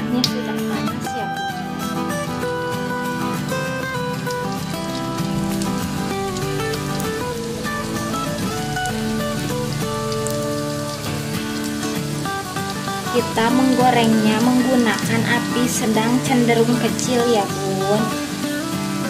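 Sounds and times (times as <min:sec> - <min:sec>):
acoustic guitar music: 0:00.0 - 0:19.0
spring rolls sizzling in oil: 0:01.3 - 0:19.0.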